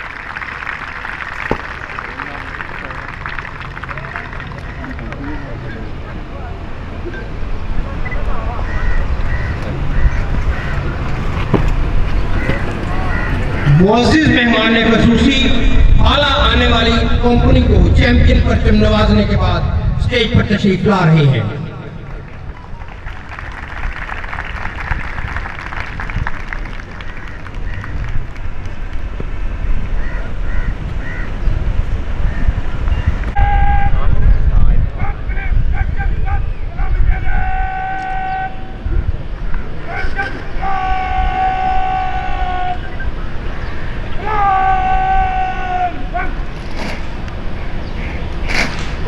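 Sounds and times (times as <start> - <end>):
wind buffeting microphone: 1.3 - 20.7, 21.4 - 49.0.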